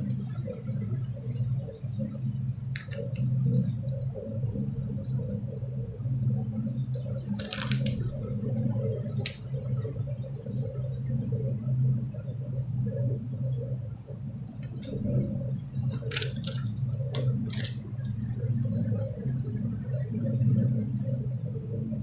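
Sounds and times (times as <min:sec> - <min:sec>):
low steady hum: 0:00.0 - 0:22.0
book pages rustling: 0:02.7 - 0:03.9, 0:07.2 - 0:08.2, 0:15.9 - 0:17.8.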